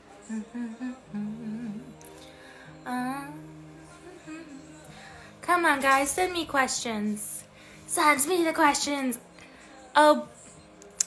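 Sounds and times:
quiet pop music: 0.0 - 11.0
woman humming: 0.2 - 5.0.

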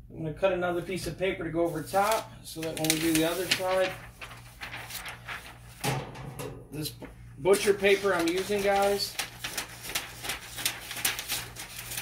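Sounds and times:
low steady hum: 0.0 - 11.8
paper rustling: 1.7 - 6.1, 7.0 - 12.0.

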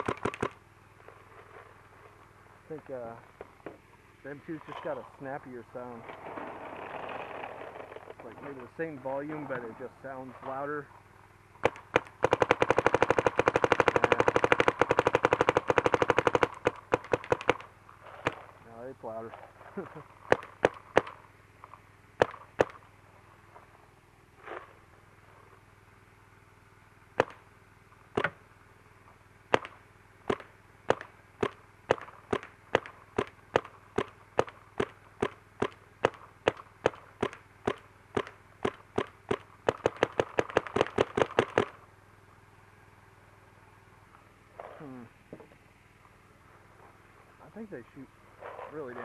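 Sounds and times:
paintball markers firing: 0.0 - 0.6, 11.6 - 18.4, 20.2 - 21.2, 22.2 - 22.8, 27.2 - 27.4, 28.1 - 28.4, 29.5 - 41.8.

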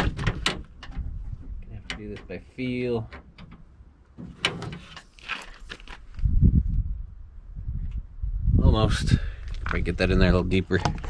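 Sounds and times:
rustling and scraping in door: 0.0 - 6.3
low rumbling handling noise: 0.0 - 11.0.

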